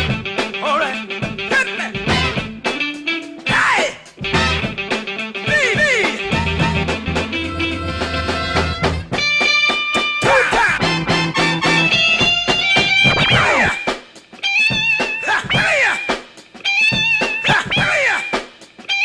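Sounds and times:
bass line: 0.0 - 0.4, 2.0 - 2.7, 4.2 - 4.9, 5.5 - 9.2, 10.6 - 13.8
turntable scratching: 3.5 - 19.0.

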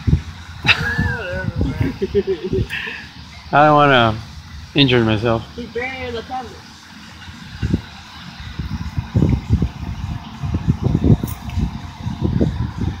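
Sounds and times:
wind buffeting microphone: 0.0 - 4.9, 5.5 - 13.0.

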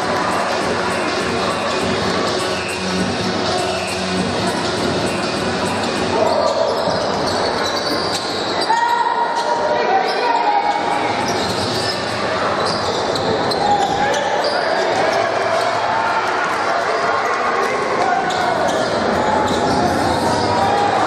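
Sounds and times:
echoing crowd chatter: 0.0 - 21.0.

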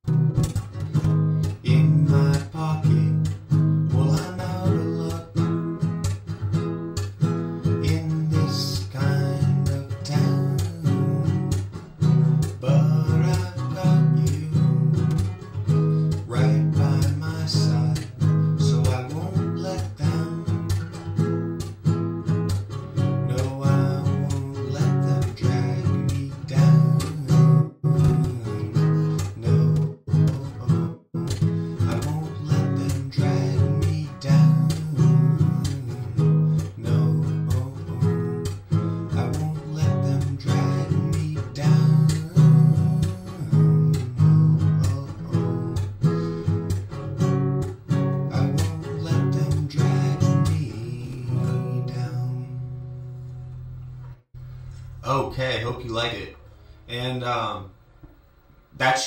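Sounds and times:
acoustic guitar strumming: 0.0 - 59.0
slap on guitar strings: 0.4 - 1.6, 11.4 - 12.6.

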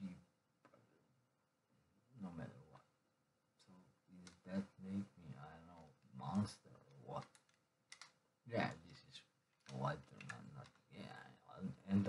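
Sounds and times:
sharp clicks: 7.2 - 8.2.

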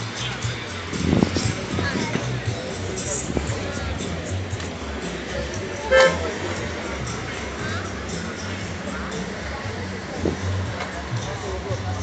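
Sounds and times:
background chatter: 0.0 - 12.0
outdoor noise: 0.0 - 12.0
car horn toot: 5.9 - 6.3.

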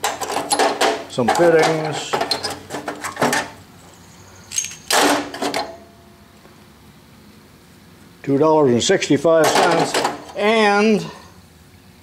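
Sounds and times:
metal parts knocking: 0.0 - 3.5, 9.4 - 10.4.

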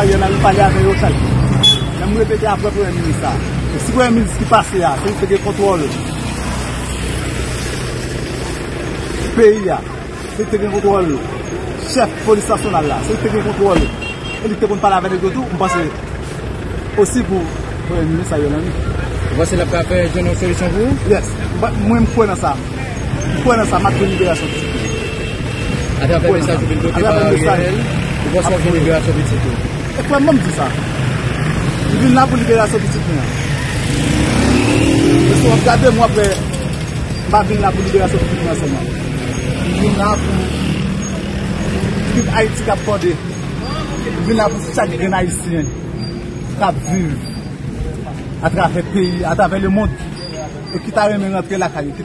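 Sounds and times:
street noise: 0.0 - 52.0
voices talking: 0.0 - 52.0
vehicle engine revving: 16.0 - 48.4.

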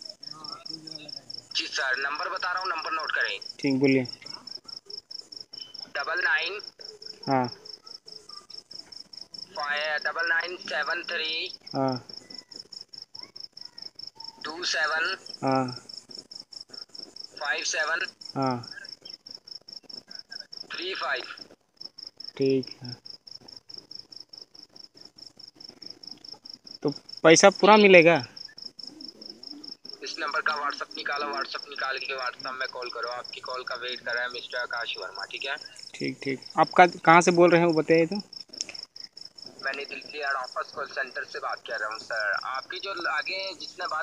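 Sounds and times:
insect chirping: 0.0 - 44.0
phone line crackle: 16.8 - 21.6.

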